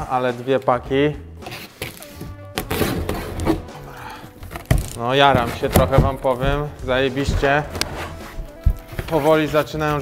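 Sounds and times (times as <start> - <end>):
background music: 0.0 - 10.0
box cutter slicing packing tape: 2.6 - 3.7.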